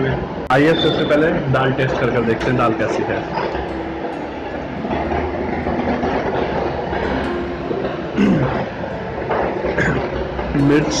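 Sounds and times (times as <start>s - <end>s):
steady rumbling background noise: 0.0s - 11.0s.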